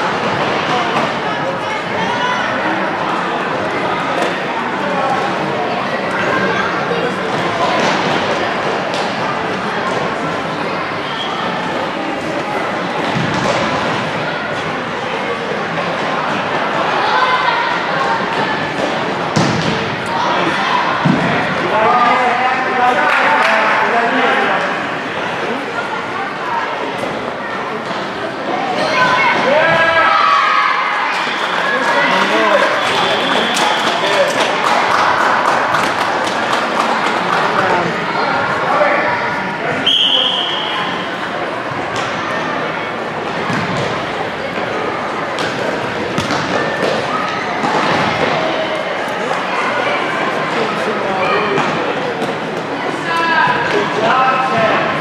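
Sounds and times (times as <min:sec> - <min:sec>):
players and spectators shouting: 0:28.4 - 0:36.0
high whistle blast: 0:39.8 - 0:41.0.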